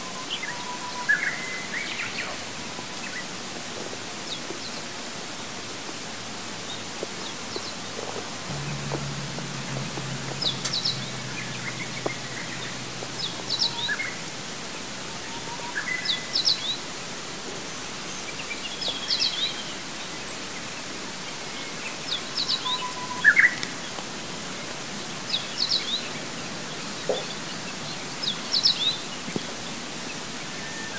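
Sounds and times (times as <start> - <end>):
steady hiss: 1.6 - 30.9
songbird singing: 6.6 - 16.8.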